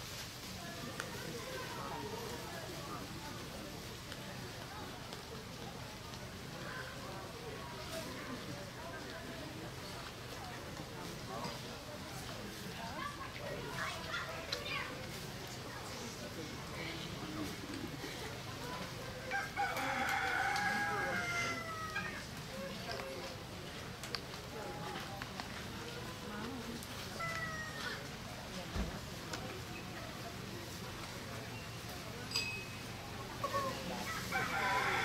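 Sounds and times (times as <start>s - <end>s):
rooster crowing: 19.3s - 22.2s, 34.1s - 35.0s.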